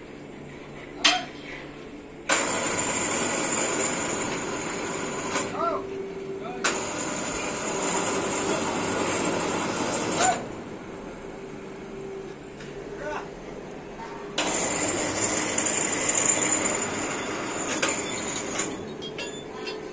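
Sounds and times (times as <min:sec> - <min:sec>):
crane electric motors whining: 0:01.9 - 0:19.9.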